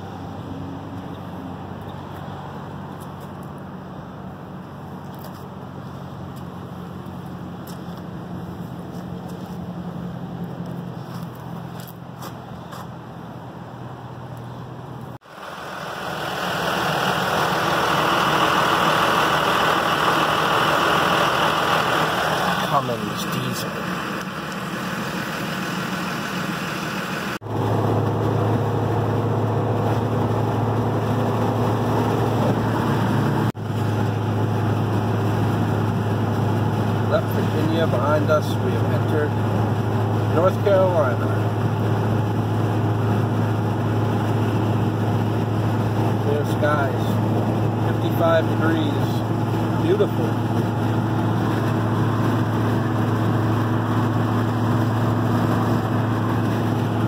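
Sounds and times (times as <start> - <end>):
road noise: 0.0 - 57.0
car engine drone in cabin: 12.5 - 57.0.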